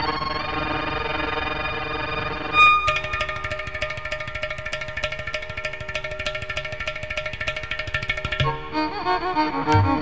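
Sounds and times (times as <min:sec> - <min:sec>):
bowed violin melody: 0:00.0 - 0:04.4, 0:08.3 - 0:10.0
rapid hand drum strokes: 0:02.9 - 0:08.6.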